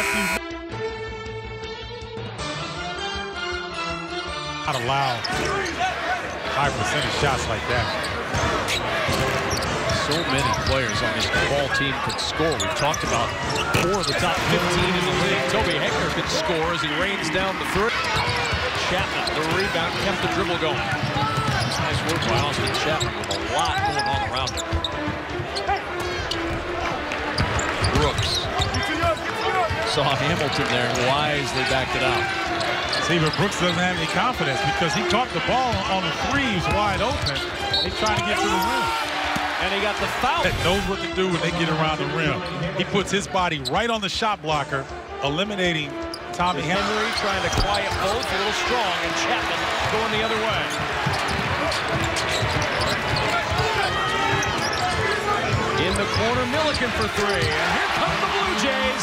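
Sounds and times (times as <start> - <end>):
crowd hubbub: 5.4 - 36.0, 47.1 - 59.0
sneaker squeaks: 7.9 - 14.3, 17.9 - 29.8, 32.2 - 34.1, 36.5 - 39.0, 46.0 - 48.6, 49.7 - 58.0
basketball bouncing on hardwood: 20.8 - 22.4.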